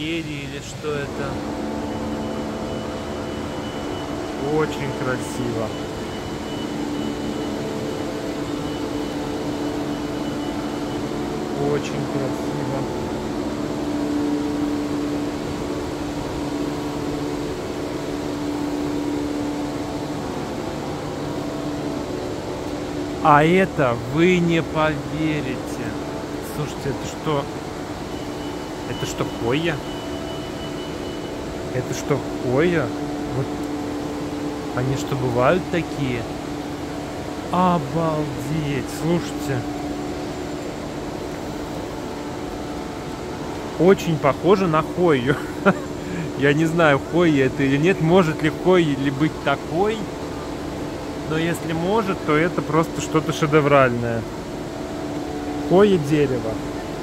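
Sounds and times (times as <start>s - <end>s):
air conditioning hum: 0.0s - 57.0s.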